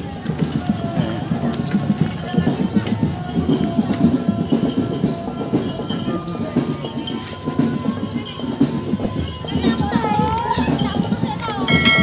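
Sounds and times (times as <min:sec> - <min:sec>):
rapid drum strokes: 0:00.0 - 0:12.0.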